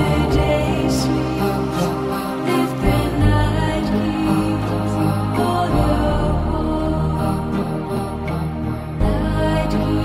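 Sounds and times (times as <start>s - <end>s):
meditative chant-like music: 0.0s - 10.0s.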